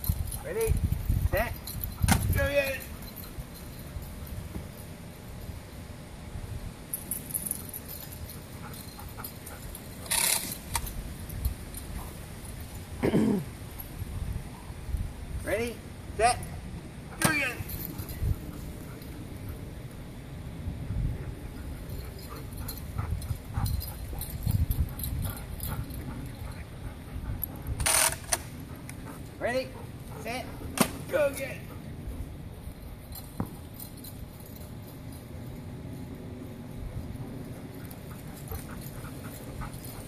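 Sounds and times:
wind buffeting microphone: 0:00.0 - 0:02.5, 0:20.4 - 0:28.6.

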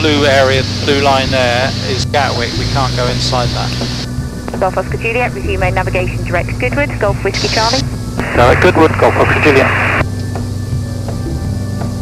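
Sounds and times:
aircraft engine and propeller drone: 0:00.0 - 0:12.0.

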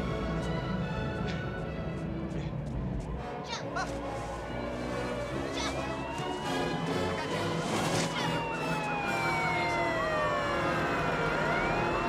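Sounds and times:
emergency sirens wailing: 0:03.1 - 0:12.0.

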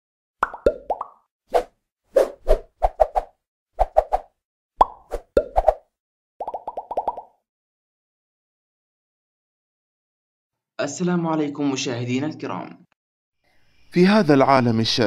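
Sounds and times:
cartoon popping sound effects: 0:00.4 - 0:01.2, 0:04.8 - 0:05.8, 0:06.4 - 0:07.4.

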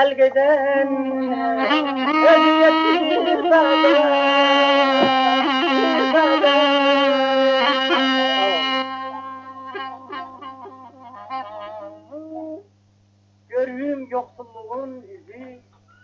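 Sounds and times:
low mains hum: 0:00.0 - 0:16.0
held drone: 0:01.6 - 0:10.4
reedy wind melody: 0:01.6 - 0:10.4
plucked lute notes: 0:02.8 - 0:06.4.

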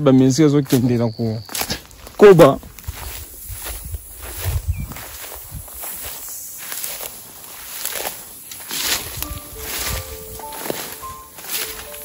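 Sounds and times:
footsteps through grass and brush: 0:00.0 - 0:12.0
vegetation rustling: 0:00.0 - 0:12.0.

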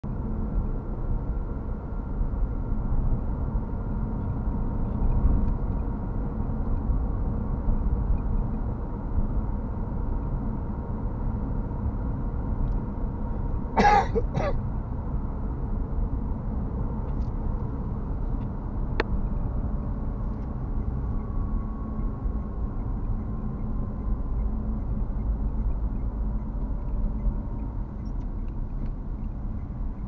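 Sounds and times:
car interior low rumble: 0:00.0 - 0:30.0.

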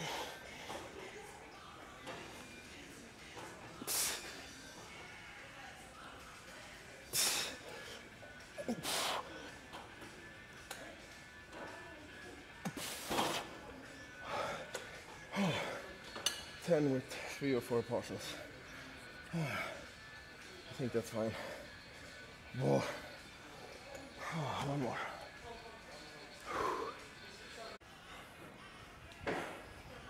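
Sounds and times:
faint background music: 0:00.0 - 0:30.0.

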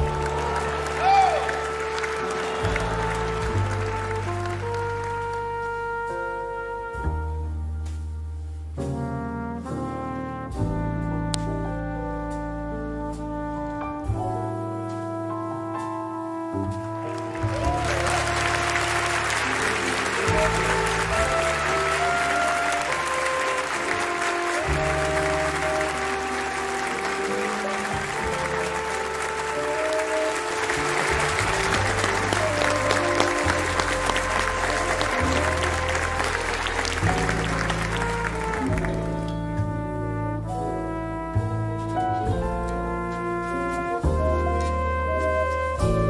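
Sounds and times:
studio audience applauding: 0:00.0 - 0:05.6, 0:17.1 - 0:39.3
background music: 0:00.0 - 0:46.0.

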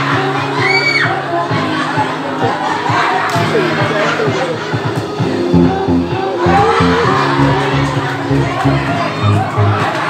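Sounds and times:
crowd shouting and cheering: 0:00.0 - 0:10.0
dance music with steady beat: 0:01.1 - 0:10.0.

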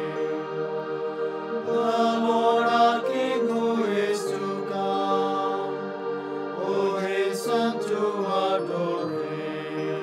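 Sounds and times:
person chanting devotional refrain: 0:01.7 - 0:05.8.

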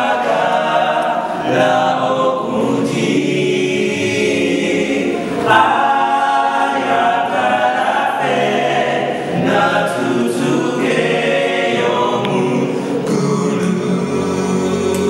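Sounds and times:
a cappella group singing gospel: 0:00.0 - 0:15.0.

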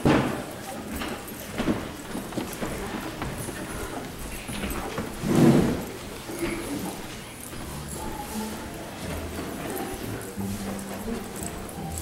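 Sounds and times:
footsteps on stage: 0:00.0 - 0:12.0.

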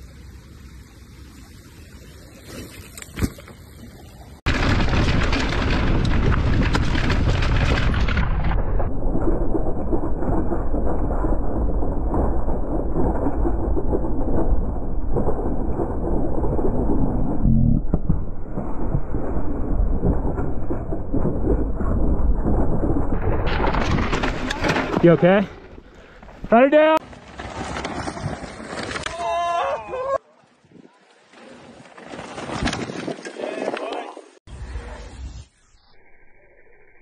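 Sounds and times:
bike tyres skidding on dirt: 0:02.2 - 0:03.8, 0:18.5 - 0:29.7, 0:31.2 - 0:35.2
low rumble: 0:04.5 - 0:26.5
bike rattles and knocks: 0:23.2 - 0:29.0, 0:31.8 - 0:34.0.

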